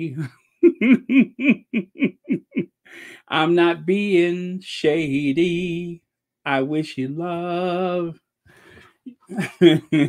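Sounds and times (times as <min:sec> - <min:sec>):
person laughing sinisterly: 0:00.1 - 0:02.8, 0:09.2 - 0:10.0.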